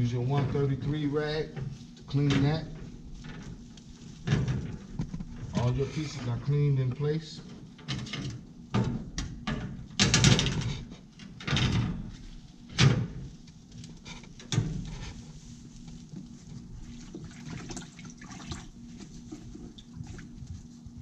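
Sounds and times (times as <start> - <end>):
low steady hum: 0.0 - 21.0
metal grate scraping and rattling: 7.4 - 13.2.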